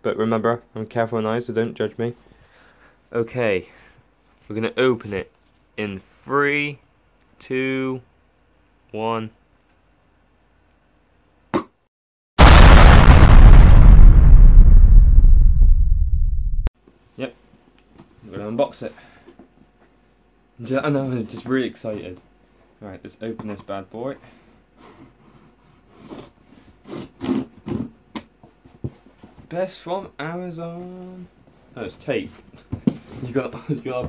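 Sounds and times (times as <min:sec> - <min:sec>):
loud explosion blast: 0:12.4 - 0:16.7
low rumble: 0:12.4 - 0:16.7.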